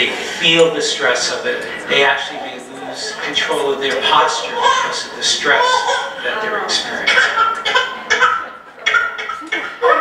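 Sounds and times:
baby crying: 0:04.4 - 0:06.4, 0:07.0 - 0:10.0.

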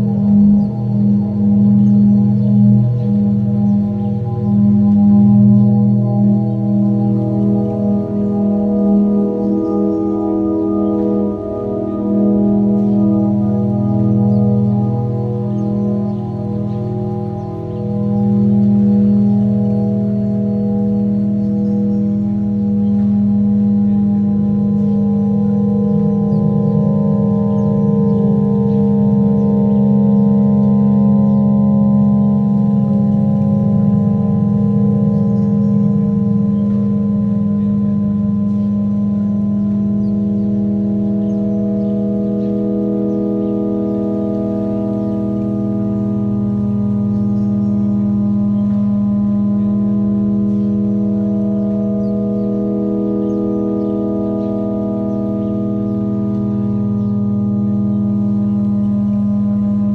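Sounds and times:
ambient drone music: 0:00.0 - 0:59.9.

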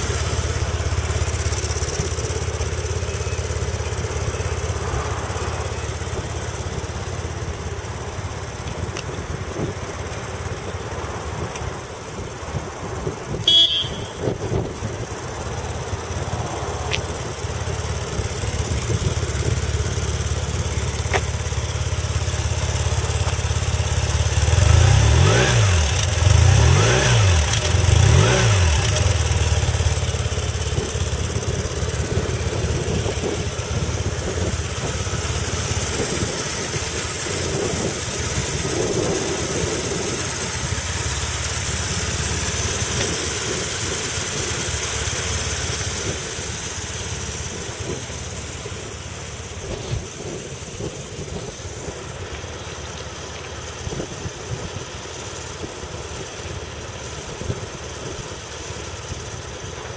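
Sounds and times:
motorcycle engine idling: 0:00.0 - 0:59.9
engine revving blips: 0:13.4 - 0:14.6, 0:24.3 - 0:30.2.

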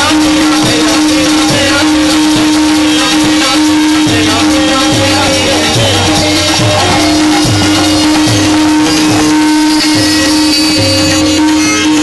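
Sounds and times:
held drone note: 0:00.0 - 0:12.0
tabla bass strokes: 0:00.0 - 0:12.0.

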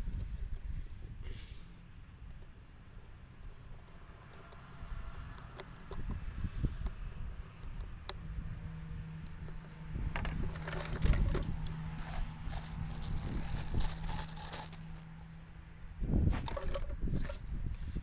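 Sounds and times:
steady low hum: 0:00.0 - 0:18.0
plastic parts clicking: 0:10.2 - 0:15.2, 0:16.4 - 0:17.4
plastic wrapping rustling: 0:11.9 - 0:15.2.

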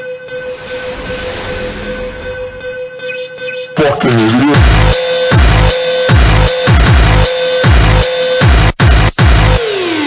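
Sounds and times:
sustained droning electronic tone: 0:00.0 - 0:03.9.

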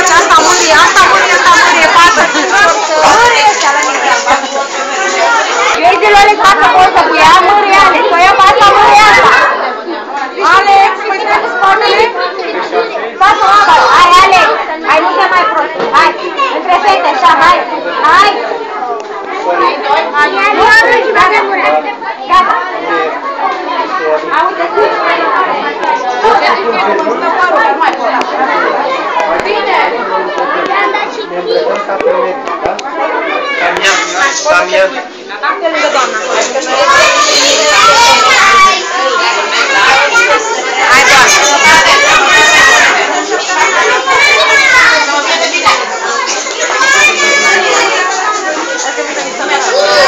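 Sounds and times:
children chattering: 0:00.0 - 0:50.0.

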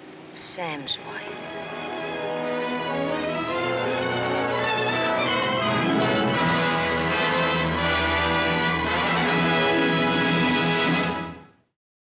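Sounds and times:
orchestral chord: 0:01.0 - 0:11.5.

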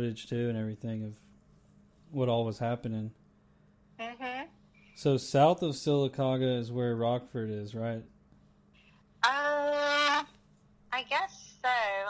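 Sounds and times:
woman speaking: 0:09.2 - 0:12.0.

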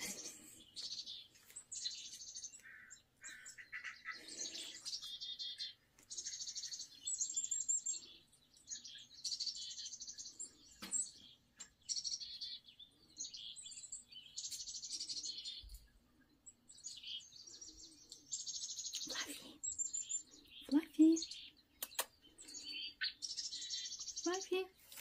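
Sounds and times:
small birds chirping and trilling: 0:00.0 - 0:25.0.

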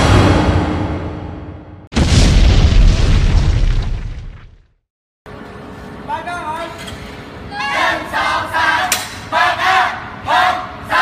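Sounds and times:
deep cinematic boom: 0:00.0 - 0:04.4.

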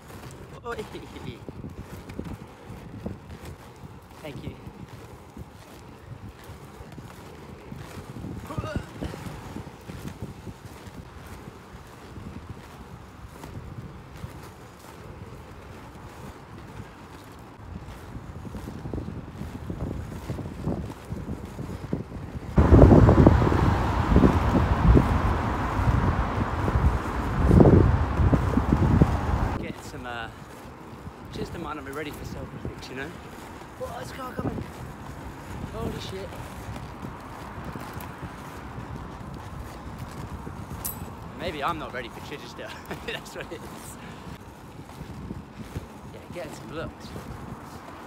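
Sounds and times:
skateboard wheels on pavement: 0:00.0 - 0:48.0
wind buffeting microphone: 0:00.0 - 0:48.0
loud gusty rumble: 0:22.6 - 0:29.6.

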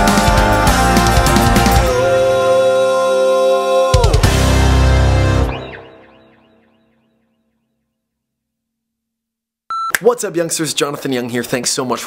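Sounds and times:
loud electronic beep: 0:04.4 - 0:06.9.

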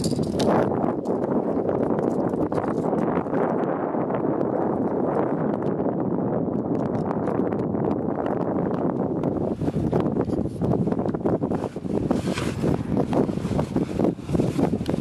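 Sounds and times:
metal harness hardware clinking: 0:00.0 - 0:01.2
wind buffeting microphone: 0:00.0 - 0:15.0.

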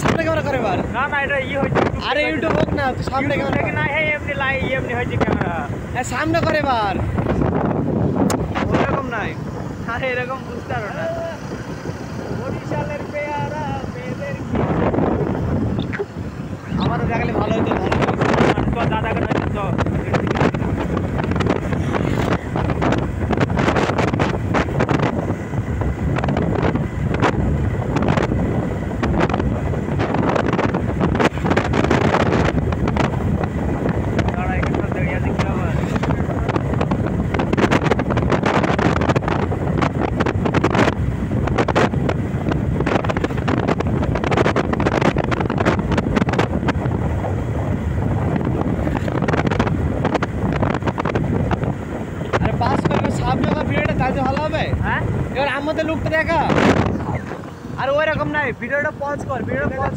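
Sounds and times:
road noise: 0:00.0 - 0:59.9
wind buffeting microphone: 0:00.0 - 0:59.9.

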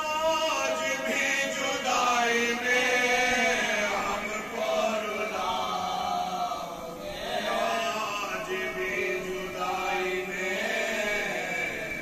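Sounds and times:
lead reciter chanting: 0:00.0 - 0:12.0
men chanting an elegy: 0:00.0 - 0:12.0.

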